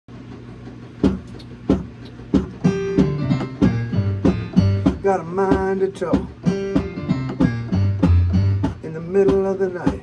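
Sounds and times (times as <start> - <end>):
low electrical hum: 0.1 - 10.0
sharp percussive knocks: 1.0 - 10.0.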